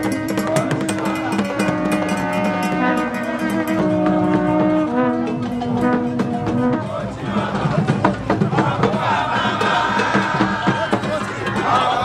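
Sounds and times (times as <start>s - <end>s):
horns sounding long held notes: 0.0s - 7.9s
sharp drum strokes: 0.0s - 12.0s.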